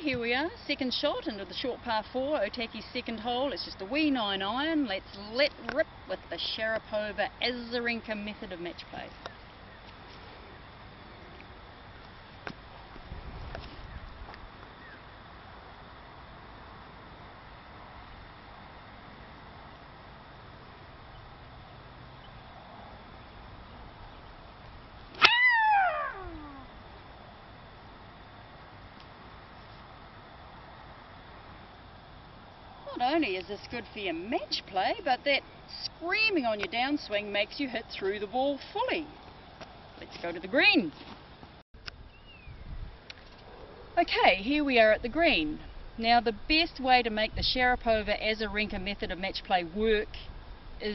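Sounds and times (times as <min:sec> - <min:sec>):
distant bird call: 0:14.8 - 0:15.1, 0:25.2 - 0:27.0, 0:42.0 - 0:42.7
woman screaming: 0:25.2 - 0:26.7.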